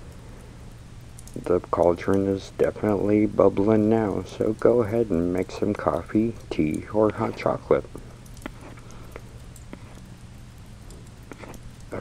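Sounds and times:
fire crackles and pops: 0.0s - 12.0s
low steady hum: 0.0s - 12.0s.

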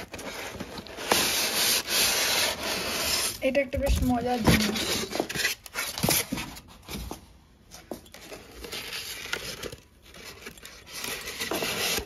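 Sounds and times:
ceramic rubbing on polystyrene: 0.0s - 5.6s.

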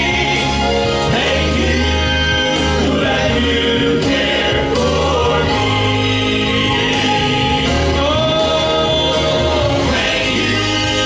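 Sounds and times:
male quartet singing in harmony: 0.0s - 11.0s.

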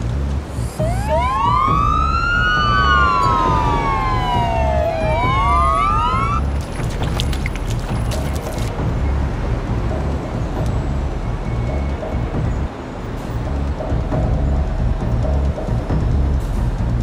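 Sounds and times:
repeating low beat: 0.0s - 12.7s, 13.4s - 17.0s
emergency vehicle sirens wailing: 0.0s - 17.0s.

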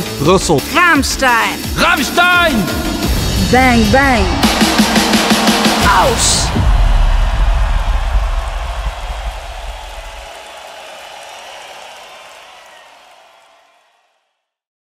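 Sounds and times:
heavy rock music: 0.0s - 10.3s.

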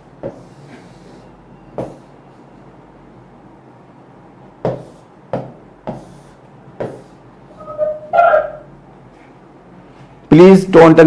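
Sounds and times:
faint background hum: 0.0s - 11.0s
high-pitched yelp: 7.6s - 8.7s.

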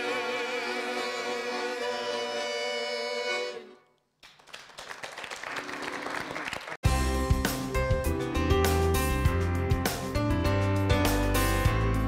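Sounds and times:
group of singers: 0.0s - 3.5s
button accordion: 0.0s - 3.9s
music: 0.0s - 4.0s, 5.4s - 12.0s.

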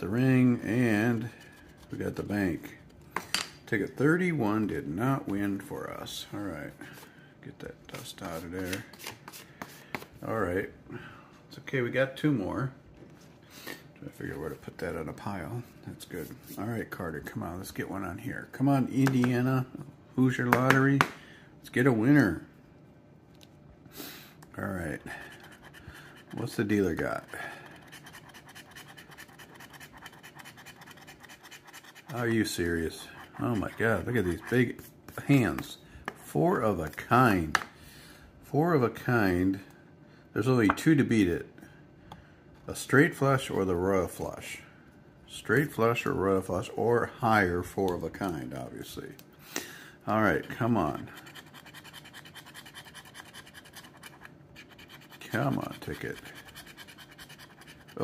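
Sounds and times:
coin scraping scratch card: 27.7s - 32.2s, 50.3s - 58.0s.

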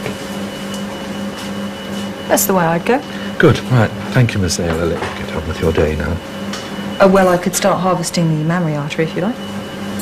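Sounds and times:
low room hum: 0.0s - 10.0s
thin high whine: 0.0s - 10.0s.

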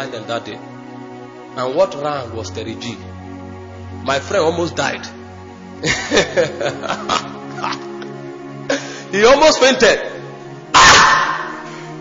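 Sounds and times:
soft background music chords: 0.0s - 12.0s
person preaching: 9.1s - 10.2s.

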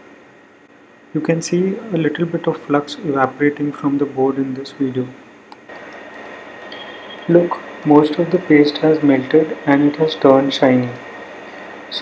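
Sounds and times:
faint high whine: 0.0s - 12.0s
gas burner flame hissing: 4.6s - 12.0s.

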